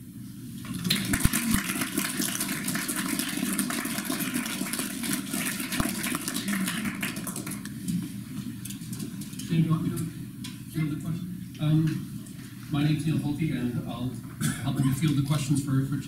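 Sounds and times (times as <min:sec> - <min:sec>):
audience applauding: 0:00.7 - 0:07.8.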